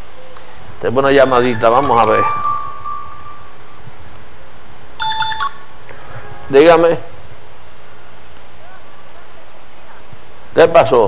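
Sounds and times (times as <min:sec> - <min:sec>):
mobile phone electronic tones: 0:01.5 - 0:03.8, 0:05.0 - 0:05.6.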